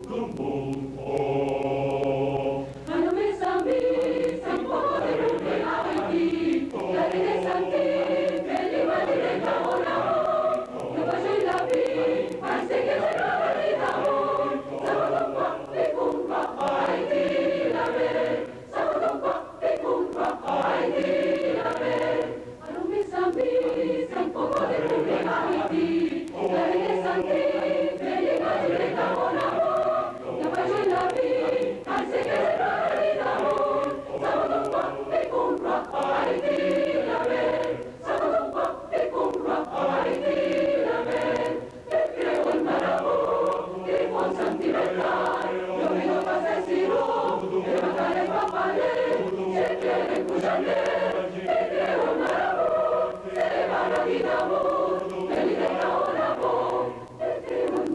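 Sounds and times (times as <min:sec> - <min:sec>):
mixed choir singing: 0:00.0 - 0:57.9.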